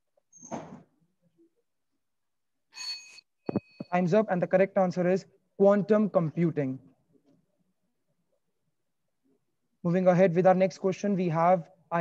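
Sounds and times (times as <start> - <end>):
bell ding: 2.8 - 4.0
man speaking: 3.9 - 6.8, 9.8 - 12.0.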